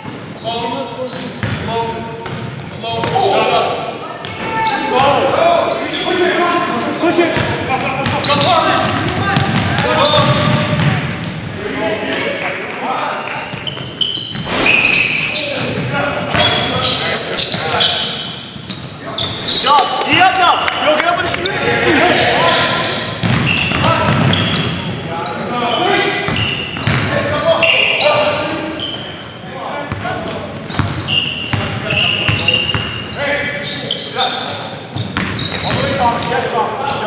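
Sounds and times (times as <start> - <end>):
players shouting: 19.0 - 24.6
basketball bouncing on hardwood: 23.2 - 24.4.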